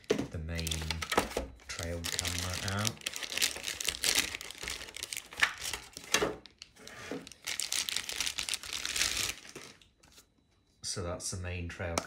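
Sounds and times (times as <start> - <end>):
plastic bag crinkling: 0.0 - 9.9.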